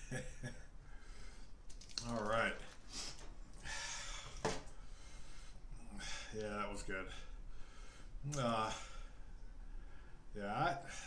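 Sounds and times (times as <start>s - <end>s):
man breathing softly: 0.8s - 1.6s, 2.8s - 6.4s, 7.1s - 11.0s.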